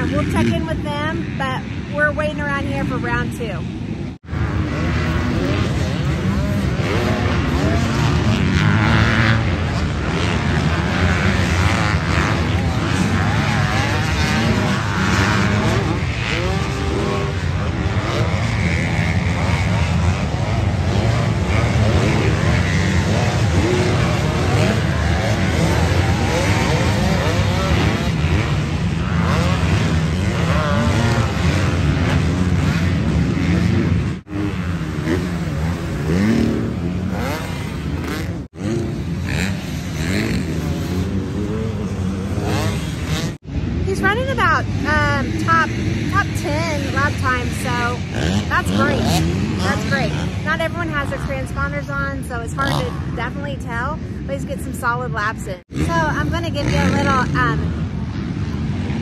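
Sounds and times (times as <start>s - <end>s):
dirt bike engines revving: 0.0s - 59.0s.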